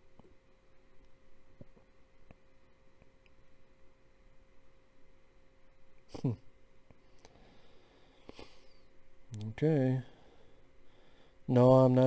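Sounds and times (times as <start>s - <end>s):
faint steady hum: 0.0s - 12.0s
soft clicks: 9.3s - 9.6s.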